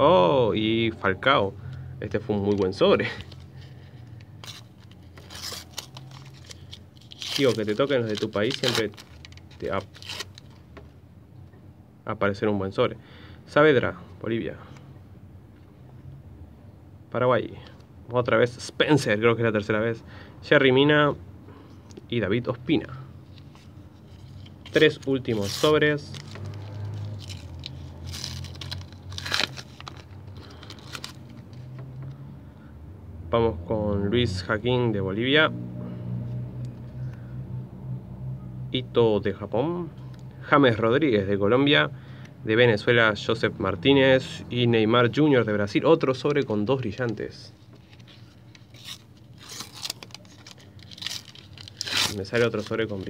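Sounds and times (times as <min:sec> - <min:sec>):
foil wrapper crinkling and ripping: 0:03.0 - 0:10.6, 0:24.1 - 0:31.6, 0:47.8 - 0:53.0.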